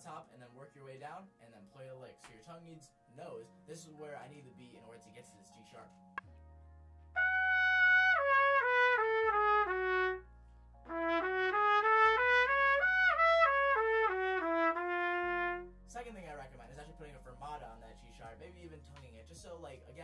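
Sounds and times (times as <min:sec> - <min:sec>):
trumpet playing: 0:07.2 - 0:15.8.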